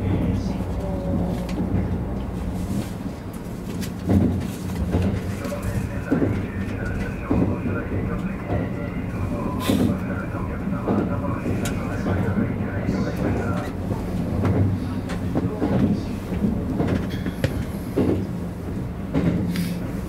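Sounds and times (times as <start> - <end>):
rail clicks: 0.0 - 20.0
train rumble and motor hum: 0.0 - 20.0.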